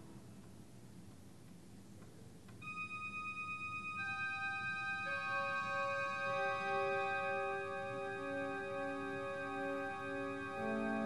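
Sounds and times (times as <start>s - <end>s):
church organ chord: 2.6s - 11.0s.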